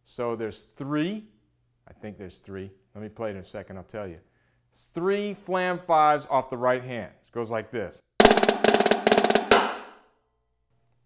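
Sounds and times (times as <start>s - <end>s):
snare drum rimshot: 8.2s - 10.0s
snare drum rolls: 8.2s - 10.0s.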